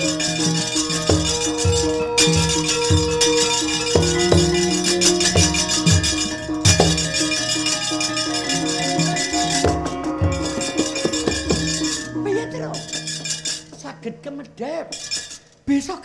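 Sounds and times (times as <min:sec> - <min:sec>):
drum strokes: 0:00.0 - 0:13.9
metallophone tones: 0:00.0 - 0:15.7
rapid metallic plate clattering: 0:14.9 - 0:15.5.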